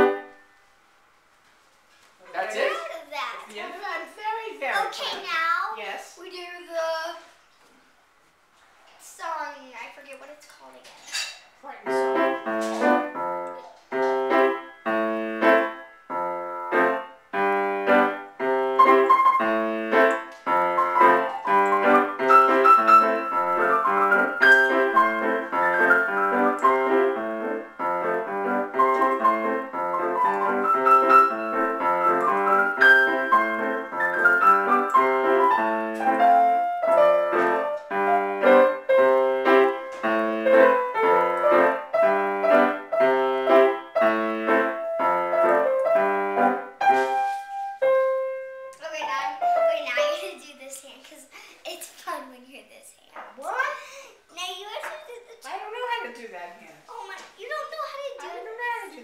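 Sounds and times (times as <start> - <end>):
grand piano duet: 0.0 - 0.4, 11.8 - 51.0.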